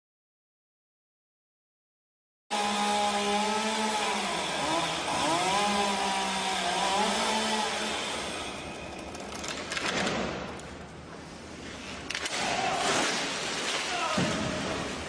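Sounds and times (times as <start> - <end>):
chainsaw cutting wood: 2.5 - 9.5.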